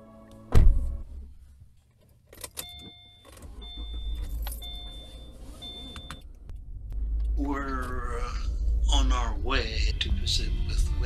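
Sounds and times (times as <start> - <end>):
car warning chime: 2.6 - 6.3
car rumble: 3.3 - 11.0.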